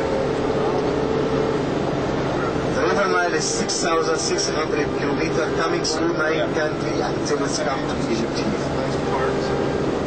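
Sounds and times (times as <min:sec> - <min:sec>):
bus engine and road noise: 0:00.0 - 0:10.0
steady whine: 0:00.0 - 0:10.0.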